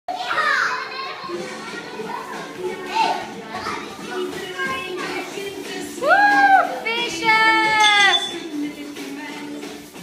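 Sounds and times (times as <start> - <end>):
young children chattering: 0.1 - 5.5.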